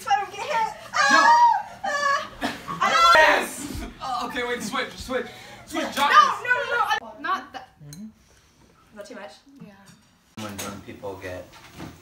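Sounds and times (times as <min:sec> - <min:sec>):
group shouting and laughing: 0:00.6 - 0:04.4.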